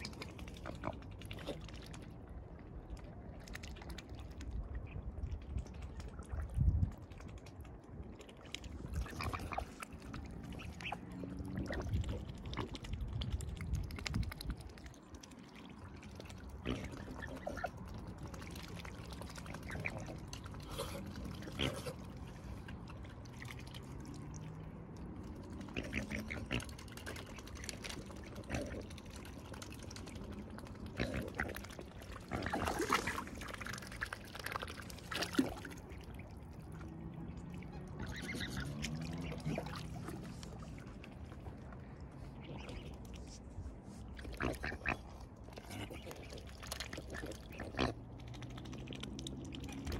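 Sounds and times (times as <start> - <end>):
birds' bills slurping in water: 0.0 - 49.9
water splashing: 0.0 - 49.9.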